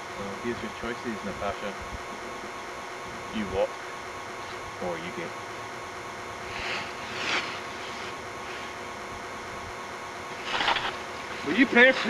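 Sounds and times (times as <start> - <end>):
camcorder hiss and hum: 0.0 - 12.0.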